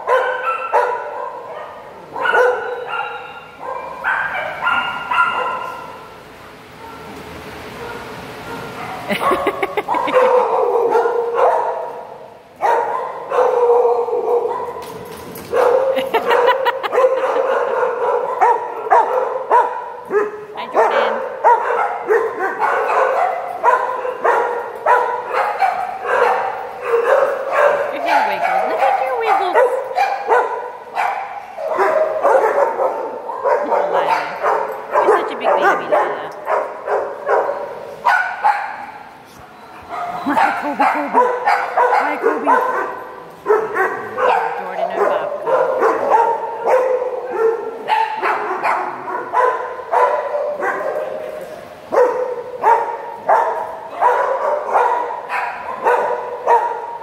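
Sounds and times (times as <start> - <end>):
dogs barking and yipping: 0.0 - 6.1, 6.7 - 57.0.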